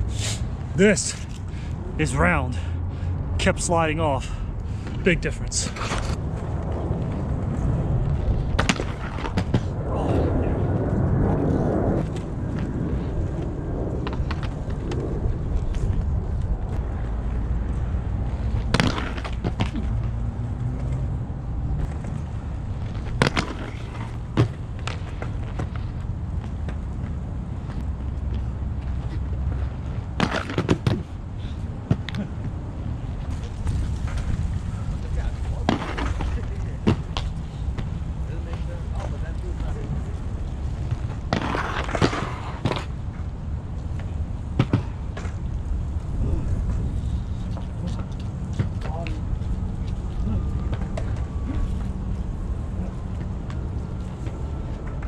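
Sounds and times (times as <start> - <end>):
wind buffeting microphone: 5.8 - 18.7, 31.2 - 41.3
skater landing on ledge: 18.6 - 19.9
skates clacking on concrete: 40.8 - 43.0.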